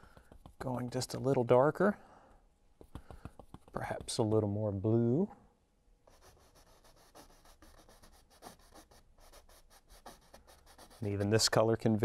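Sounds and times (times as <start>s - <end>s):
paintbrush scratching on canvas: 2.8s - 4.3s, 6.1s - 11.6s.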